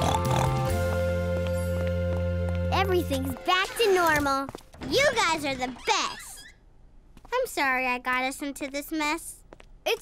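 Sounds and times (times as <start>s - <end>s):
cartoon pig oink: 0.0s - 0.7s
background music: 0.0s - 4.4s.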